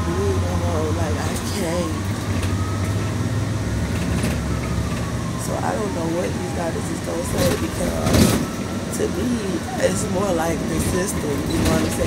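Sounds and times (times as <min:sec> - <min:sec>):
vehicle engine and road rumble: 0:00.0 - 0:12.0.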